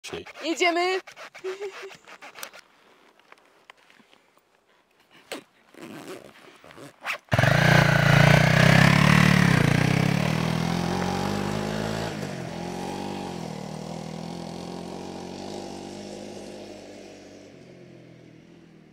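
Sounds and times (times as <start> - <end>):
zipper: 0.0 - 2.7, 5.3 - 7.4
motorcycle engine riding off: 7.3 - 18.9.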